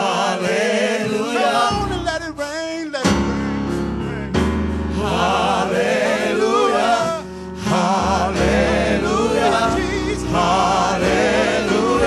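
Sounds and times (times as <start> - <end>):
group singing gospel: 0.0 - 2.1, 3.1 - 12.0.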